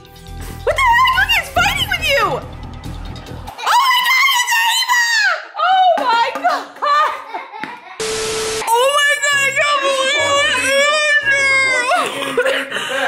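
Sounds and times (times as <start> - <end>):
woman screaming and wailing: 3.6 - 6.0, 8.7 - 12.4.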